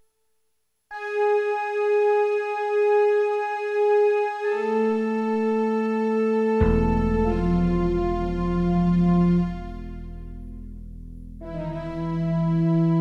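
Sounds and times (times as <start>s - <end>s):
electronic keyboard notes: 0.9s - 13.0s.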